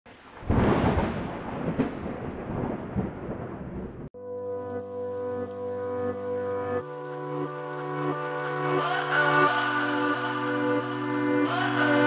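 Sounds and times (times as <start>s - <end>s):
thunder crash and rumble: 0.1s - 4.2s.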